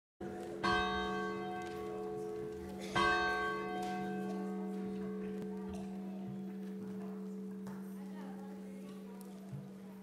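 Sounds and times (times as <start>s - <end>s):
church bell tolling: 0.2s - 10.0s.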